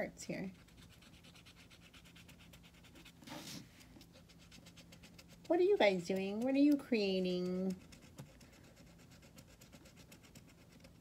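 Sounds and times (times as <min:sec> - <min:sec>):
marker scratching on cardboard: 0:00.4 - 0:11.0.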